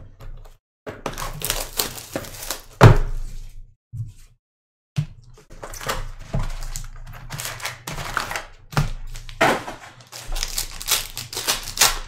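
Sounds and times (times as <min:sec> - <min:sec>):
cardboard packaging rustling: 0:01.1 - 0:02.8, 0:05.6 - 0:12.0.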